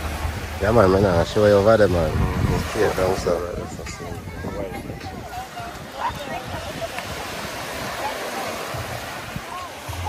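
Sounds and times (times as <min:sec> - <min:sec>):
faint voices: 0:00.0 - 0:10.0
small waves on sandy shore: 0:00.0 - 0:10.0.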